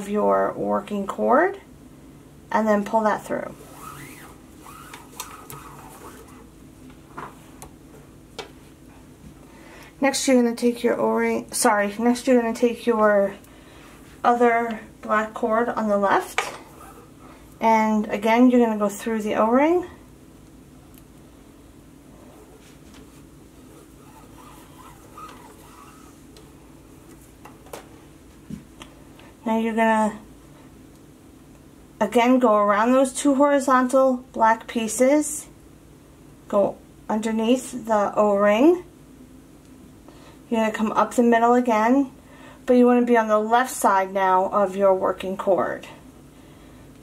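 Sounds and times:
cord sliding swishes: 3.5s - 6.5s, 22.2s - 26.5s.

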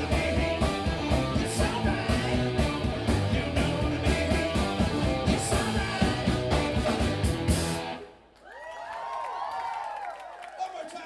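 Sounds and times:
live funk band playing: 0.0s - 8.0s
audience cheering and whooping: 8.4s - 11.0s.

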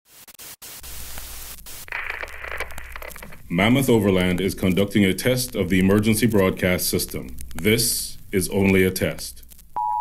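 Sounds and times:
radio static hiss: 0.1s - 9.8s
bright band of noise: 1.9s - 4.1s.

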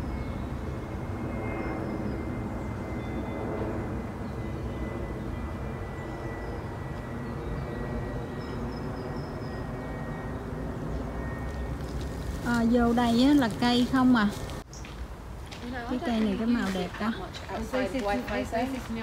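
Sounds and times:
distant engine drone: 0.0s - 19.0s.

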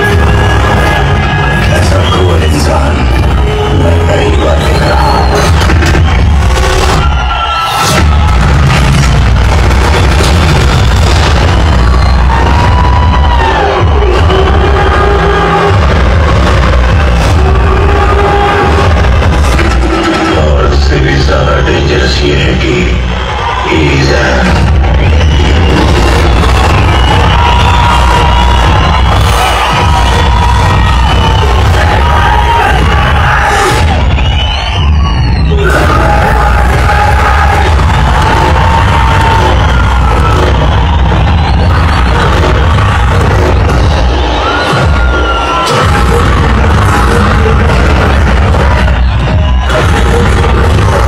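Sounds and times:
film soundtrack music and bangs: 0.0s - 23.1s, 23.7s - 51.0s
audience cheering: 0.0s - 51.0s.

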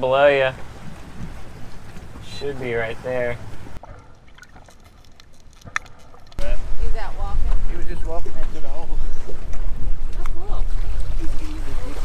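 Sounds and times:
wind buffeting microphone: 5.6s - 12.0s.

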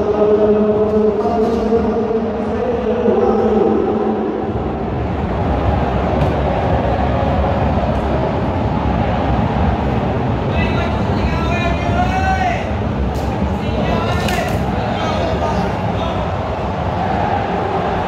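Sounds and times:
stadium crowd din: 0.0s - 18.0s
supporters chanting: 13.8s - 18.0s.

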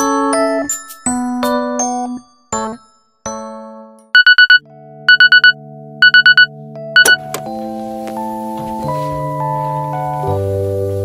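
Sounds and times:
digital alarm beeping: 4.2s - 7.2s.

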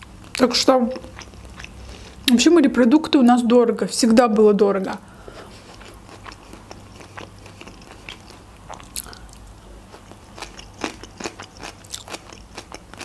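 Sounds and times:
wet chewing sounds: 0.2s - 2.3s, 5.3s - 13.0s.

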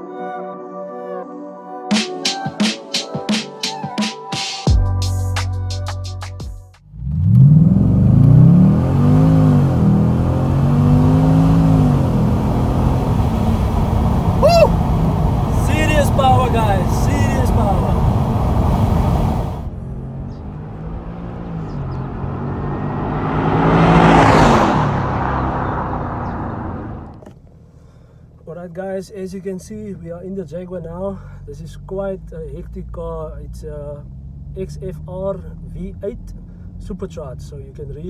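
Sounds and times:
car engine accelerating hard: 6.9s - 27.4s
car passing by: 12.8s - 27.2s
voices shouting: 14.4s - 14.8s.

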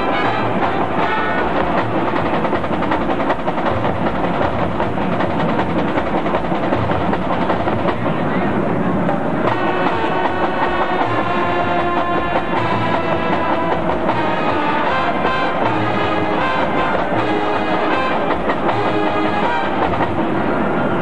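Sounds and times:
brass band held chords: 0.0s - 2.6s, 9.4s - 20.3s
marching drums: 0.0s - 20.8s.

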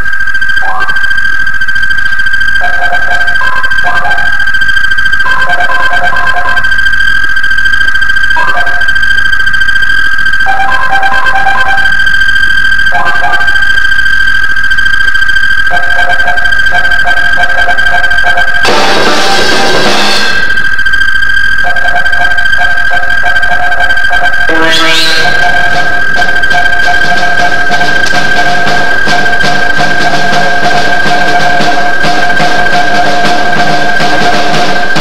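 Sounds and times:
synthesizer music: 24.5s - 35.0s.

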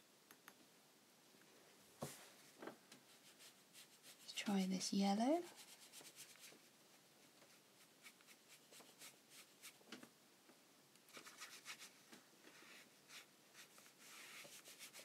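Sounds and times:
brush strokes on paper: 3.1s - 9.8s, 11.1s - 15.0s.

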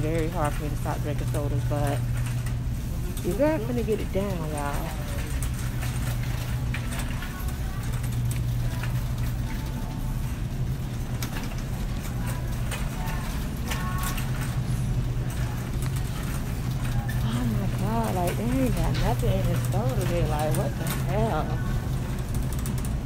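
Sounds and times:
faint voices of shoppers: 0.0s - 23.0s
low steady hum: 0.0s - 23.0s.

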